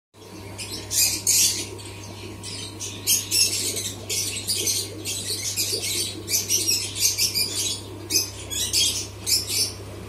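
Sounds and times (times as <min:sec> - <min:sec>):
aquarium air pump hum: 0:00.2 - 0:10.0.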